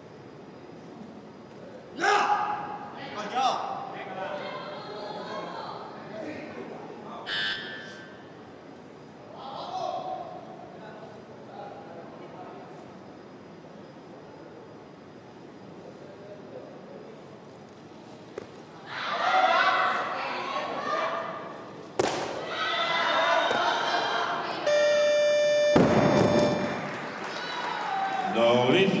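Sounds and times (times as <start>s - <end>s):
sharp crack: 22.0s - 22.4s
crowd shouting and cheering: 22.4s - 24.7s, 25.8s - 28.6s
electronic buzzer: 24.6s - 27.0s.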